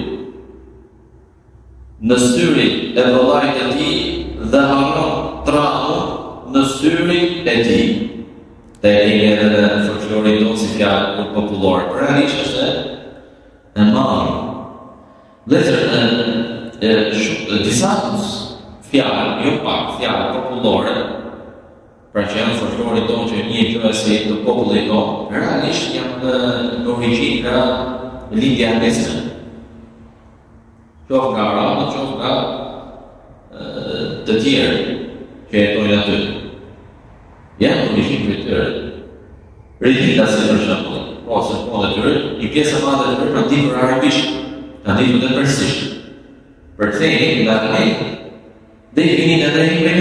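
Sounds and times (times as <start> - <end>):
man chanting: 2.0 - 8.2, 8.8 - 13.1, 15.5 - 21.4, 22.2 - 29.8, 31.0 - 36.7, 37.4 - 39.2, 39.8 - 46.0, 46.8 - 50.0.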